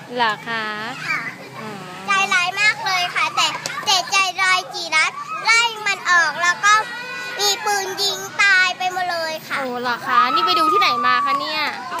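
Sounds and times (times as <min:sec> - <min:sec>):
young children talking: 0:00.2 - 0:12.0.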